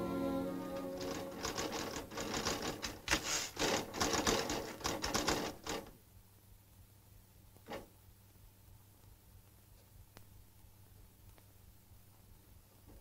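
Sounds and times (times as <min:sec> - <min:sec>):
held orchestral chord: 0:00.0 - 0:01.8
typewriter keys striking: 0:01.0 - 0:05.9.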